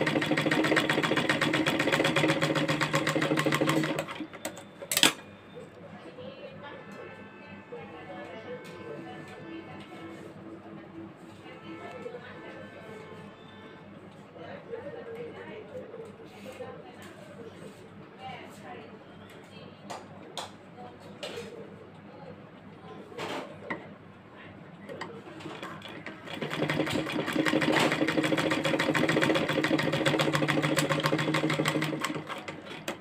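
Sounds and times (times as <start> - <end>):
sewing machine stitching: 0.0 - 5.2, 25.4 - 33.0
faint voices talking: 3.8 - 31.0.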